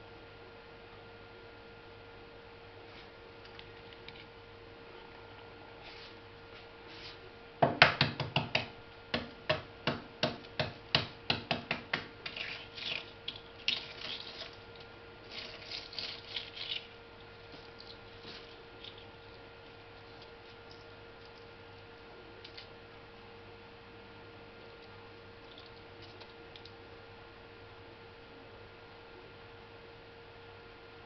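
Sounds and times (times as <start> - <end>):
shell crackling while peeled: 12.2 - 21.5.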